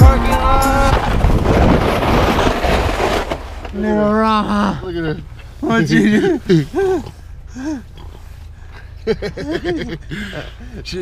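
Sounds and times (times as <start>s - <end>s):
wind buffeting the microphone: 0.5s - 3.0s
man calling out: 3.8s - 7.0s.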